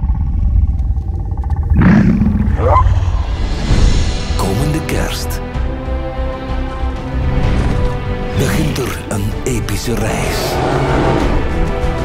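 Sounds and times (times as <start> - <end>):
dinosaur call rising in pitch: 0.0 - 3.2
deep low rumble: 0.0 - 4.4.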